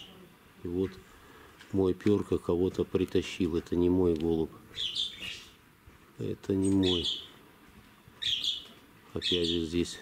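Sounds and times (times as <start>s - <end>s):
small bird chirping: 4.7s - 5.6s, 6.6s - 7.4s, 8.2s - 9.9s.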